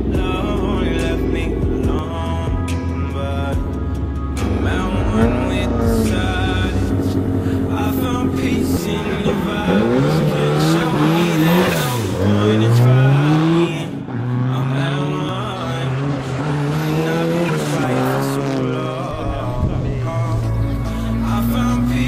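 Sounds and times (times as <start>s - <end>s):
rally car engine accelerating: 0.0s - 22.0s.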